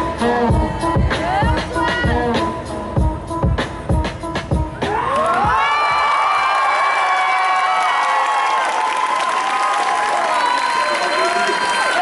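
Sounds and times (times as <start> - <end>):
hip-hop music: 0.0 - 5.7
crowd screaming and cheering: 4.7 - 12.0.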